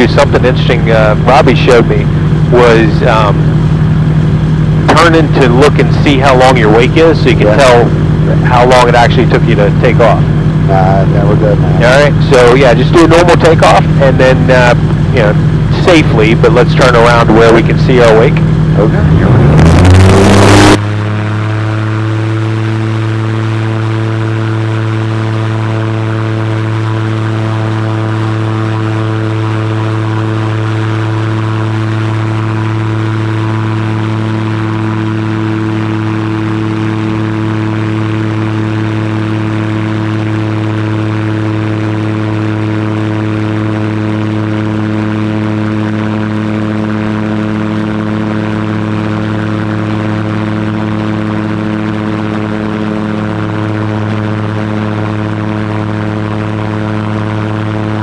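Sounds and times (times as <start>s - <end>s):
propeller engine droning: 0.0s - 58.0s
loud rush of noise: 9.6s - 22.6s.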